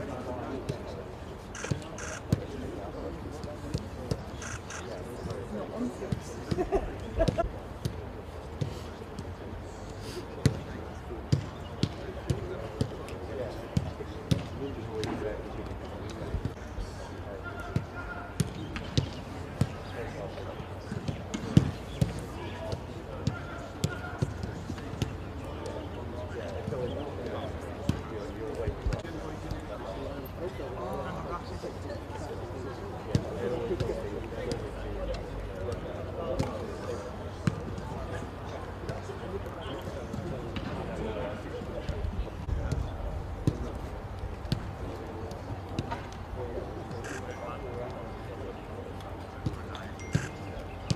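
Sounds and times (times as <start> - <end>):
players' voices: 0.0 - 50.9.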